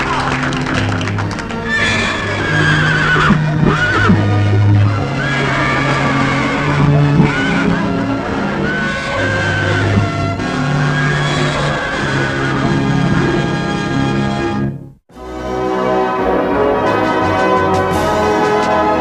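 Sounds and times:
orchestral music: 0.0s - 19.0s
horse whinnying: 1.5s - 14.2s.

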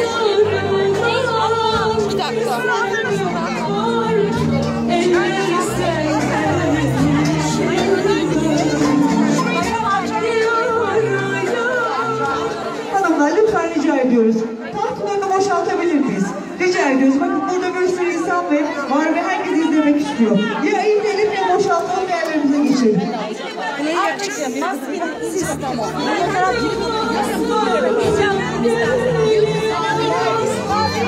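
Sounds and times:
music: 0.0s - 22.8s, 24.6s - 31.0s
crowd chatter: 0.0s - 31.0s
many people talking: 0.0s - 31.0s.

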